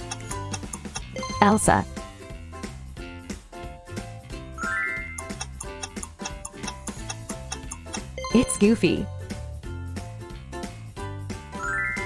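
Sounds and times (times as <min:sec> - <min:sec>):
clock-like ticking: 0:00.0 - 0:01.5, 0:05.2 - 0:08.6.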